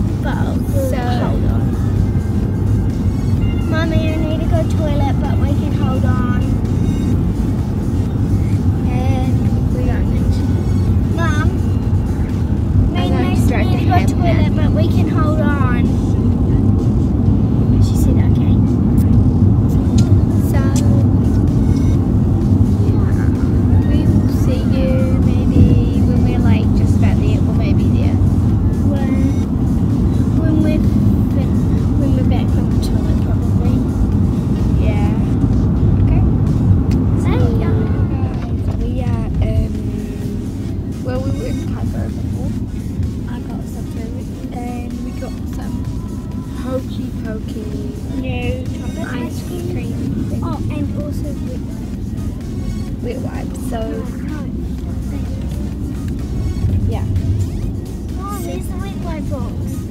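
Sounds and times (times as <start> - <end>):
car cabin road rumble: 0.0 - 59.9
music: 0.0 - 59.9
children's voices: 37.1 - 40.4, 58.2 - 59.9.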